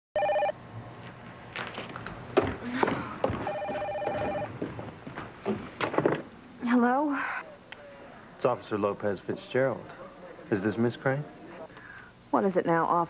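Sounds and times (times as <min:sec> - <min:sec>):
telephone ringing: 0:00.2 - 0:00.6, 0:03.4 - 0:04.6
knocks and clatter: 0:02.4 - 0:06.3
phone picked up clunk: 0:03.4 - 0:04.5.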